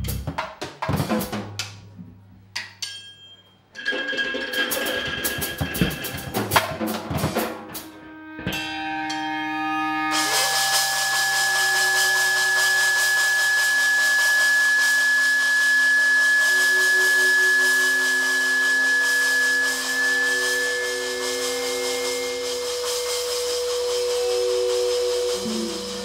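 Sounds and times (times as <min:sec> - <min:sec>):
low held notes: 0:05.3 - 0:26.0
piercing high tone: 0:08.0 - 0:26.0
noise music hiss: 0:10.0 - 0:26.0.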